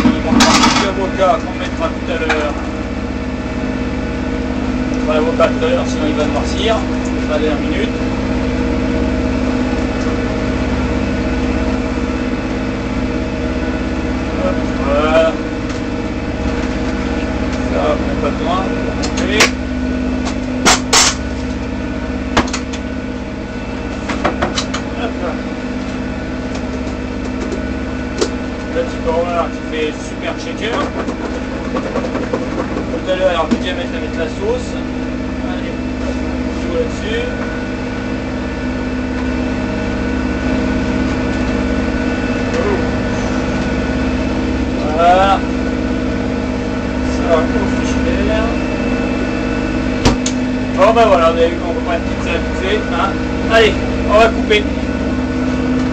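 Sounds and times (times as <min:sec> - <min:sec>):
diesel engine running: 0:00.0 - 0:55.9.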